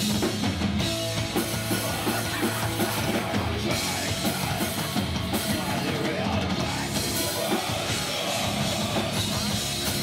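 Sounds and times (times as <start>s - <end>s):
drum kit: 0.0s - 10.0s
live metal band playing: 0.0s - 10.0s.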